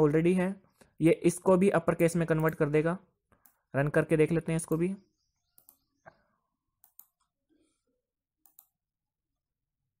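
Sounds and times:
computer mouse clicks: 0:05.6 - 0:05.9, 0:06.8 - 0:07.4, 0:08.4 - 0:08.8.

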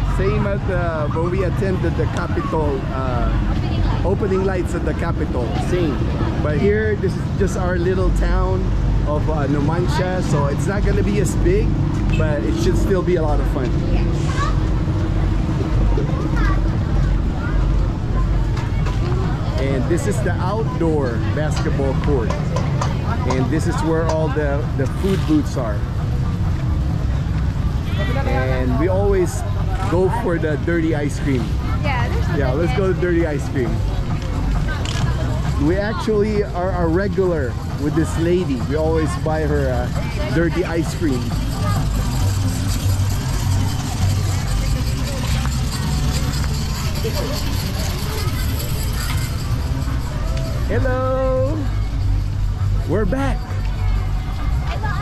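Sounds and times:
heavy low rumble: 0:00.0 - 0:55.0
passers-by voices: 0:00.0 - 0:55.0.

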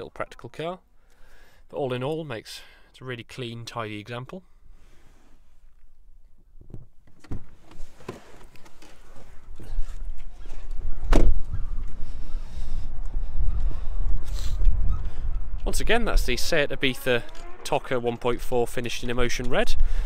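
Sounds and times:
wind rumble on microphone: 0:09.2 - 0:20.0
car door shutting: 0:11.0 - 0:11.4.

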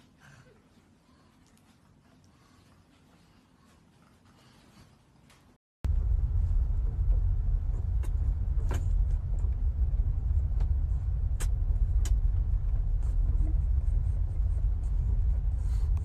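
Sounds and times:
train carriage rumble: 0:05.9 - 0:16.0.

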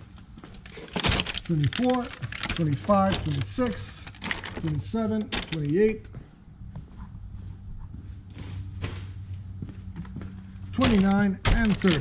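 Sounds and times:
plastic bottles knocking in cooler: 0:00.9 - 0:05.7, 0:10.8 - 0:12.0.

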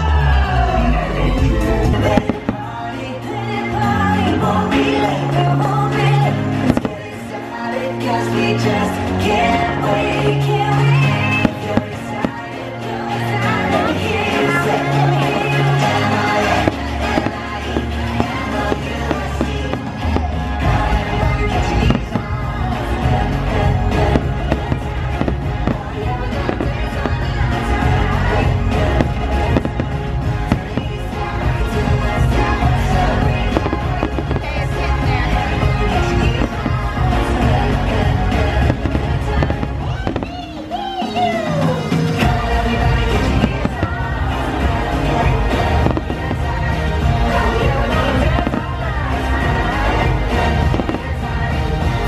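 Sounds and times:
loud music: 0:00.0 - 0:52.0
fireworks bangs: 0:01.8 - 0:02.8, 0:06.6 - 0:07.4, 0:13.7 - 0:41.4, 0:42.2 - 0:52.0.

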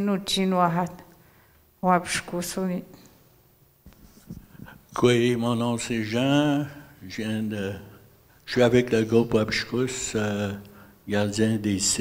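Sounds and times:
microphone handling rustles and knocks: 0:03.8 - 0:05.0.

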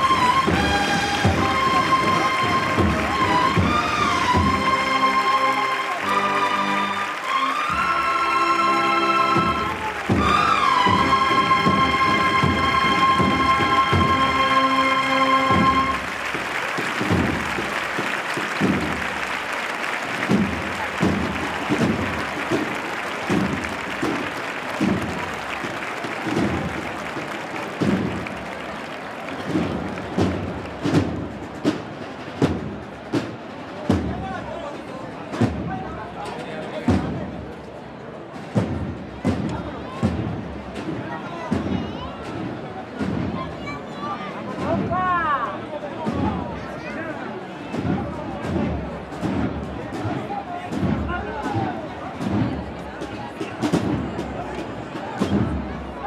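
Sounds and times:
crowd murmuring: 0:00.0 - 0:56.0
drums beating a slow march: 0:00.0 - 0:56.0.

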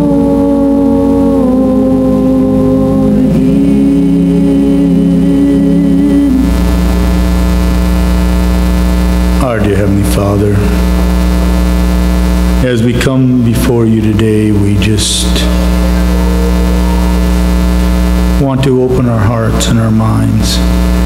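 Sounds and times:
soft sustained keyboard chords: 0:00.0 - 0:08.8, 0:10.6 - 0:21.0
person speaking a prayer: 0:09.4 - 0:10.9, 0:12.6 - 0:17.2, 0:18.4 - 0:20.7.

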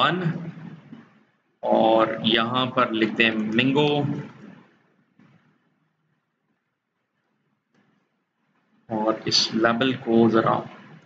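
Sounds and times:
man speaking: 0:00.0 - 0:00.6, 0:01.6 - 0:04.5, 0:08.9 - 0:10.9.

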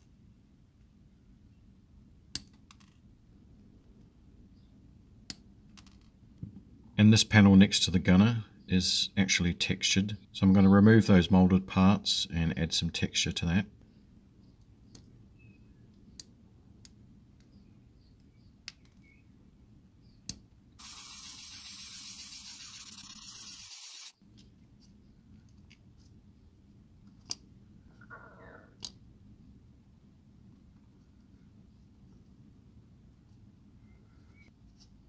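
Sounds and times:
plastic rubbed on sandpaper: 0:20.8 - 0:24.1.

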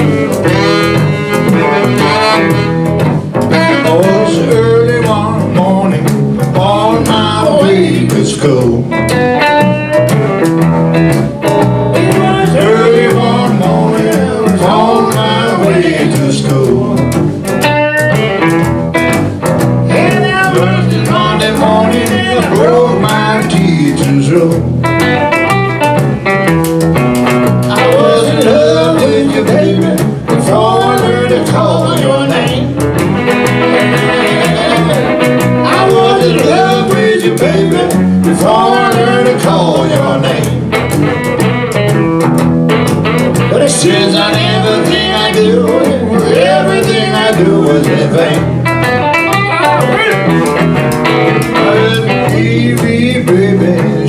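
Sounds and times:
saxophone: 0:00.0 - 0:04.8
electric guitars strumming: 0:00.0 - 0:54.0
person singing: 0:03.5 - 0:09.0, 0:11.3 - 0:17.1, 0:19.9 - 0:24.8, 0:27.6 - 0:32.8, 0:33.6 - 0:40.7, 0:43.4 - 0:48.6, 0:51.3 - 0:54.0.

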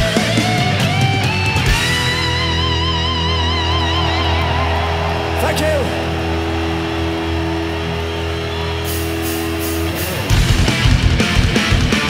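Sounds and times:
electric guitars and bass chord: 0:00.0 - 0:12.0.

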